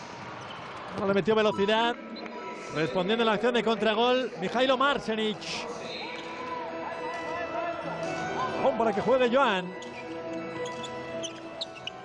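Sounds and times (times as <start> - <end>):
arena background music: 0.0 - 12.0
shoes squeaking on court: 0.2 - 1.0, 5.8 - 6.5, 9.8 - 12.0.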